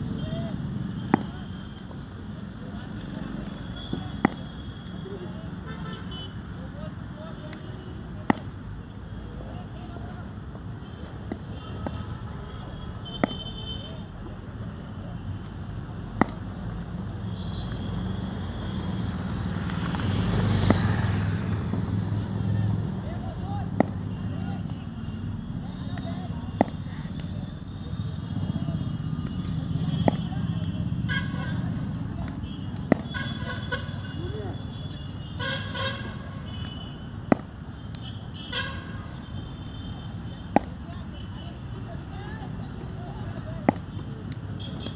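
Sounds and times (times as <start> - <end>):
outdoor background noise: 0.0 - 44.9
cricket bat striking ball: 1.0 - 1.4, 4.1 - 4.5, 8.2 - 8.6, 20.5 - 21.1, 23.6 - 24.1, 25.9 - 26.8, 30.0 - 30.3, 32.2 - 33.2, 37.3 - 37.6, 40.5 - 40.8
vehicle horn honks: 5.6 - 6.4, 31.0 - 31.6, 32.4 - 37.1, 38.0 - 40.2.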